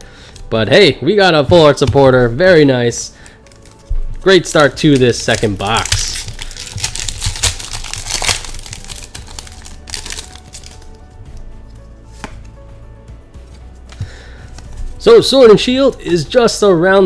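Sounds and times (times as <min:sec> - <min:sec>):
handling of cards: 0:00.0 - 0:00.6, 0:01.4 - 0:16.6
foil wrapper crinkling: 0:03.2 - 0:03.9, 0:04.5 - 0:11.0.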